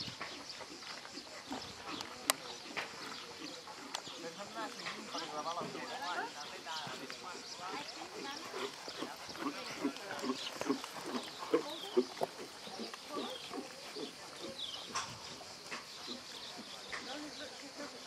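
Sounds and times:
horse breathing: 0.0s - 17.0s
horse hoofbeats on sand: 0.0s - 18.0s.

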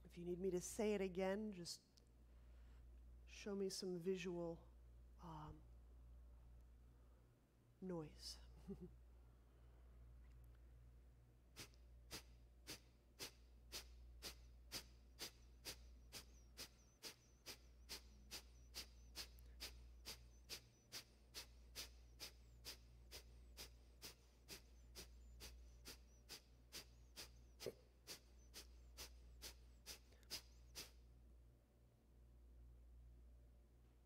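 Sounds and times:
forceful nasal exhalations: 11.5s - 31.0s.

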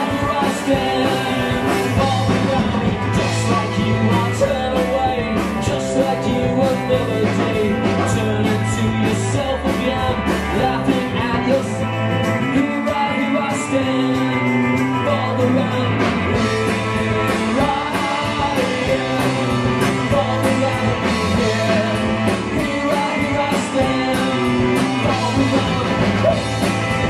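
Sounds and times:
drum kit and cymbals beat: 0.0s - 27.0s
rock band playing live: 0.0s - 27.0s.

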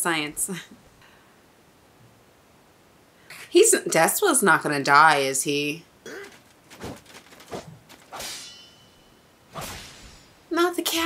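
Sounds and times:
sword slash swishes: 6.8s - 8.8s, 9.5s - 10.4s.

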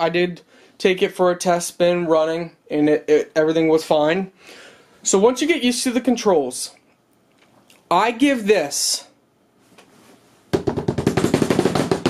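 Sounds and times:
snare drum roll: 10.6s - 12.0s.

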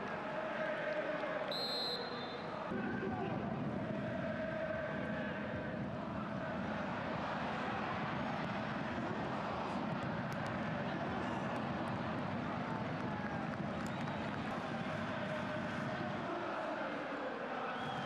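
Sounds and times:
stadium crowd noise: 0.0s - 18.0s.

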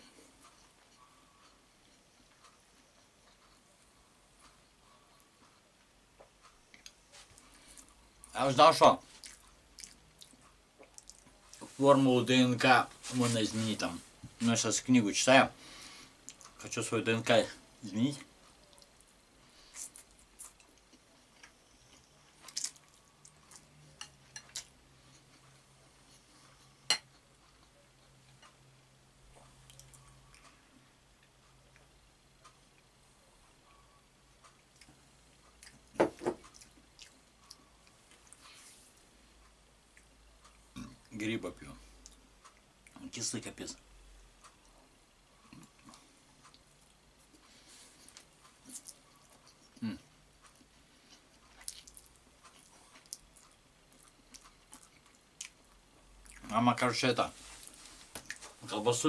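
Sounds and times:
man chewing food: 0.0s - 8.4s, 9.0s - 11.8s, 15.6s - 16.6s, 17.6s - 41.2s, 41.8s - 43.1s, 43.8s - 56.6s, 57.4s - 58.7s.

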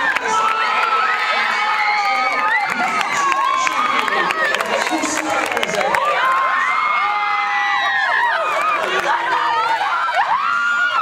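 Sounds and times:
young people screaming and cheering: 0.0s - 11.0s.

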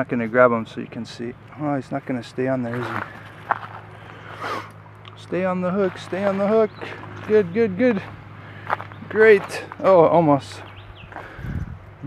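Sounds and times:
metal hook scuffing dirt: 2.7s - 10.0s.

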